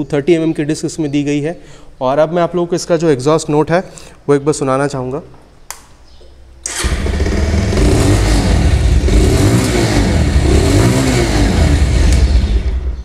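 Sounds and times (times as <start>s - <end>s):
motorcycle engine revving: 6.7s - 13.0s.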